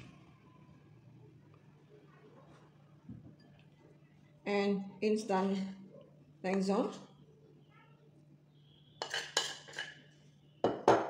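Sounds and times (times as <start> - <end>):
metal spoon scraping ceramic bowl: 9.0 - 10.1.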